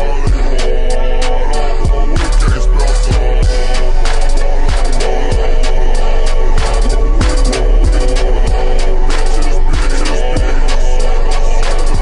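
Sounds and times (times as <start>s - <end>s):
slowed hip hop beat: 0.0s - 12.0s.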